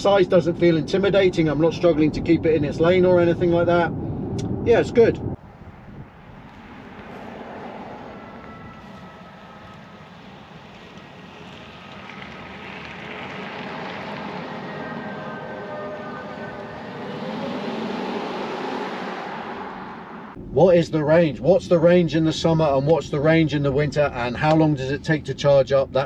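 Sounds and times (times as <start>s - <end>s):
car tyre and road noise: 0.0s - 26.0s.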